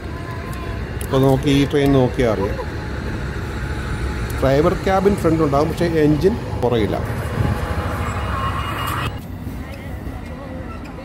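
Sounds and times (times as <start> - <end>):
wheels hissing on rail: 0.0 - 9.7
train rumbling: 0.0 - 10.9.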